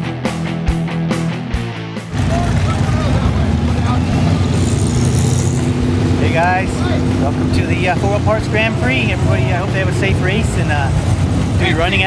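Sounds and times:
rock music: 0.0s - 12.0s
race car engine rumbling: 2.1s - 12.0s
man speaking: 2.2s - 4.8s, 6.2s - 11.0s, 11.6s - 12.0s.

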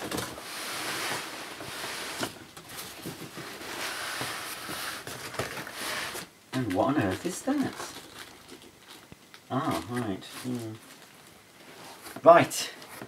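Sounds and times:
plastic and cardboard crinkling: 0.0s - 13.0s.

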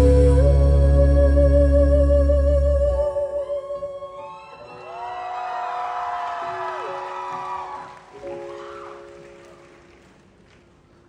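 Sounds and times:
woman singing long note: 0.0s - 4.6s
keyboard chords: 0.0s - 4.8s
audience cheering and whooping: 4.2s - 10.0s.

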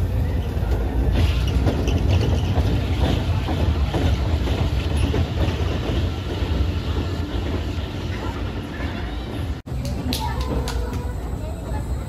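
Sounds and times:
roller coaster wheels rumbling on rails: 0.0s - 12.0s.

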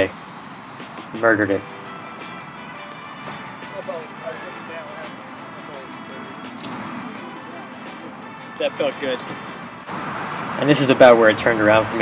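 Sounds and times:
soft background music: 0.0s - 9.9s
sharp click: 6.5s - 6.9s.

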